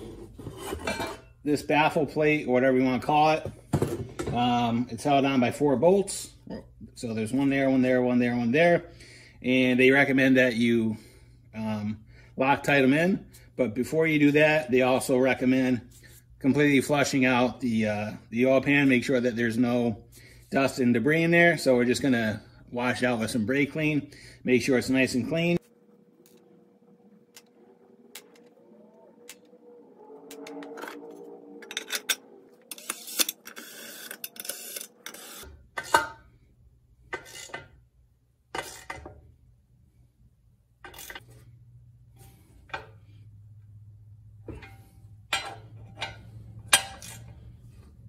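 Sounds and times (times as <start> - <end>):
metal tools clinking: 44.5 - 47.4.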